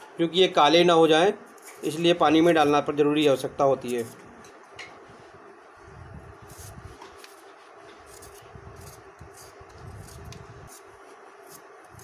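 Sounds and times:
peeler scraping potato: 0:06.4 - 0:12.0.

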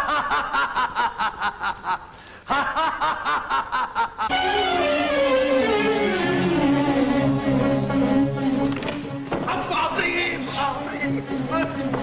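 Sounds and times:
man laughing: 0:00.0 - 0:04.3
orchestral music with strings: 0:04.3 - 0:12.0.

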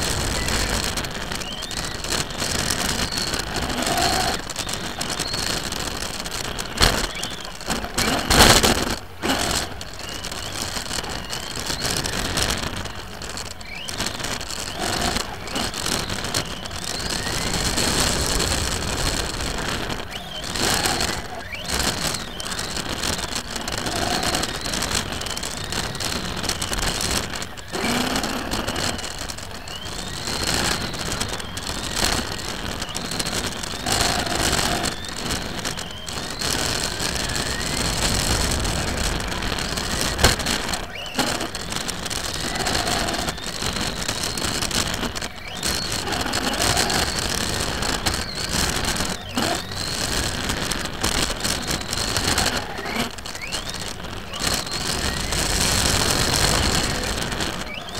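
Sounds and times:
radio-controlled car motor whine: 0:00.0 - 0:57.9.

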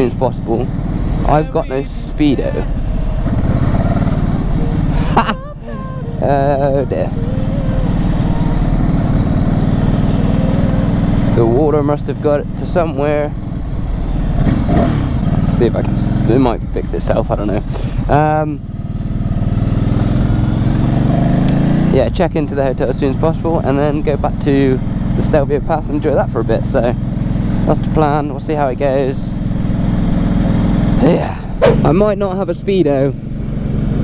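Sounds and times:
motorcycle engine riding along: 0:00.0 - 0:34.0.

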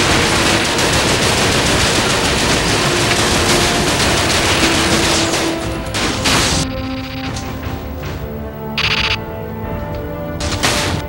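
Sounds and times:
rapid gunfire: 0:00.0 - 0:09.2, 0:10.4 - 0:11.0.

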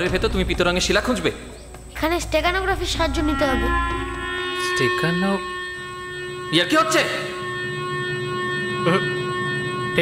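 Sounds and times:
sustained synth drone: 0:02.5 - 0:10.0.

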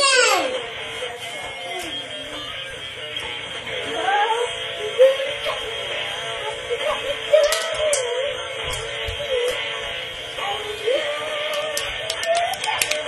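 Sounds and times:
electronic toy music: 0:00.0 - 0:13.0
child singing: 0:03.8 - 0:05.6, 0:06.4 - 0:09.6, 0:10.4 - 0:13.0.

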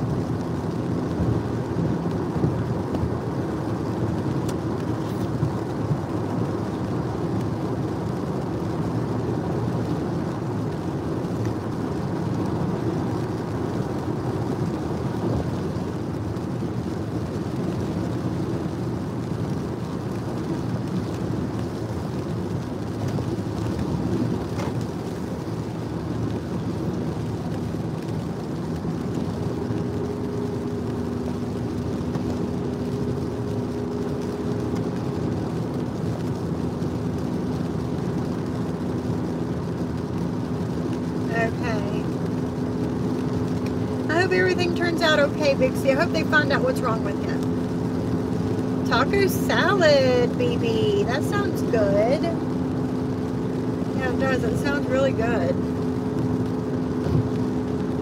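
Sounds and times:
car cabin road and engine noise: 0:00.0 - 0:58.0.

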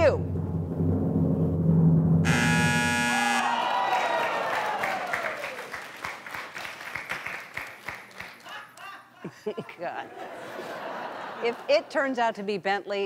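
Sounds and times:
downward sliding tone: 0:00.0 - 0:03.6
drumroll: 0:00.0 - 0:06.2
electronic buzzer sting: 0:02.2 - 0:03.6
light clapping: 0:03.9 - 0:08.9.

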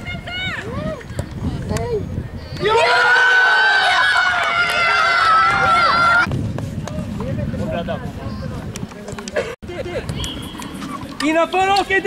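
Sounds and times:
young voices cheering: 0:02.6 - 0:06.3.

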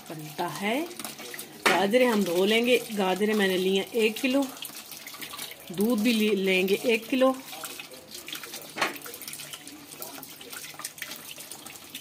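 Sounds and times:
small water splashes: 0:00.0 - 0:12.0
tap water running into steel sink: 0:00.0 - 0:12.0.

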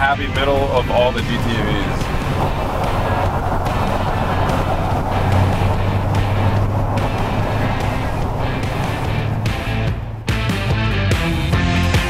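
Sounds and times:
background music: 0:00.0 - 0:12.0
car engine running: 0:00.0 - 0:12.0.

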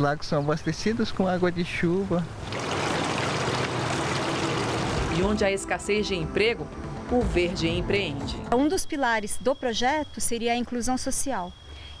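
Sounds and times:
waterfall splashing over rocks: 0:02.4 - 0:05.4.

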